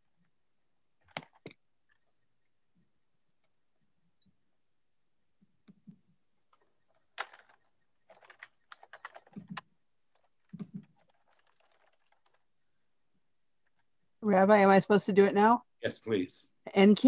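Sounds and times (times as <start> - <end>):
computer keyboard typing: 7.2 - 12.4.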